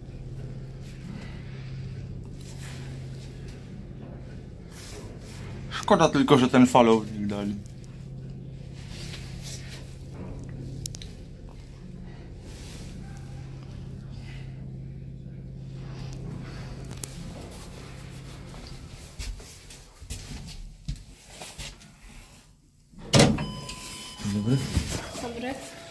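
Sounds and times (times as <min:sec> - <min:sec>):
lift drive humming: 0:00.0 - 0:19.7.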